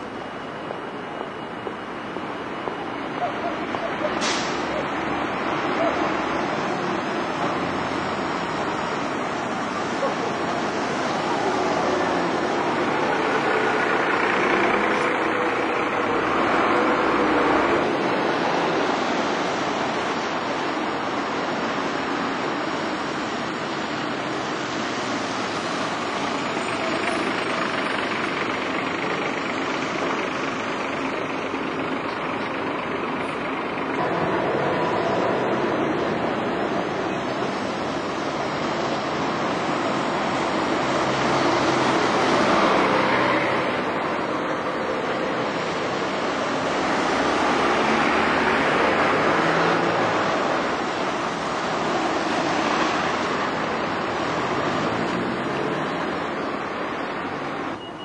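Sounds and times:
diesel buses passing: 0:00.0 - 0:58.0
tyres hissing on wet road: 0:03.8 - 0:58.0.

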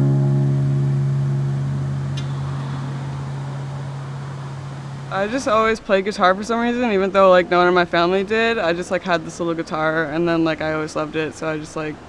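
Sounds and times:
guitar chord ringing: 0:00.0 - 0:05.3.

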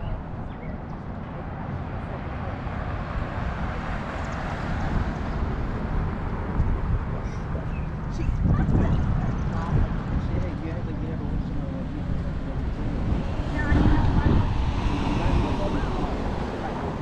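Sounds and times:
car approaching: 0:00.0 - 0:17.0
traffic noise with low rumble: 0:00.0 - 0:17.0.

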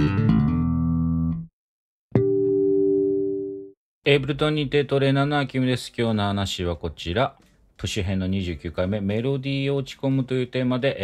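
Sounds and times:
electric bass guitar riff: 0:00.0 - 0:01.5, 0:02.2 - 0:03.7.

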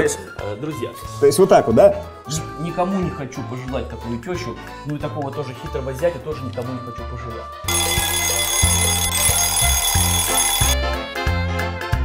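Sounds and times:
alarm clock bell ringing: 0:07.7 - 0:10.8.

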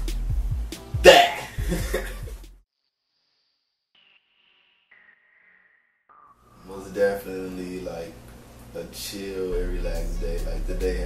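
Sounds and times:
hip-hop beat with kick drums: 0:00.0 - 0:02.6, 0:09.5 - 0:11.0
man laughing and shouting: 0:01.0 - 0:02.3.

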